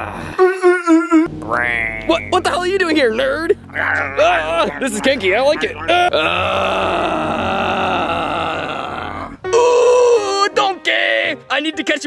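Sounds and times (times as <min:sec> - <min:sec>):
man groaning: 0:00.0 - 0:01.3, 0:03.7 - 0:10.5.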